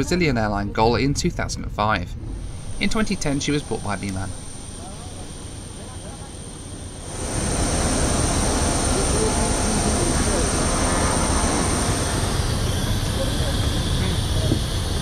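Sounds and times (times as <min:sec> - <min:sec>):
jet aircraft whine and roar: 0:01.2 - 0:15.0.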